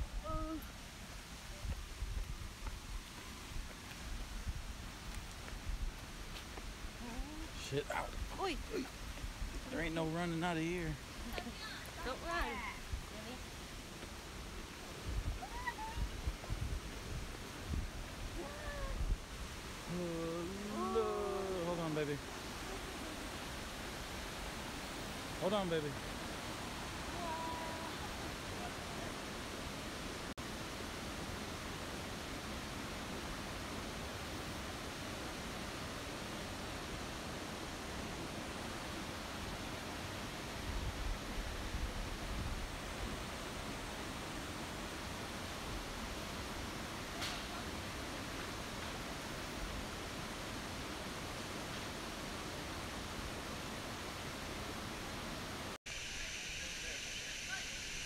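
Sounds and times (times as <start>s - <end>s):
wind buffeting microphone: 14.9s - 19.9s
waterfall rushing: 16.9s - 58.0s.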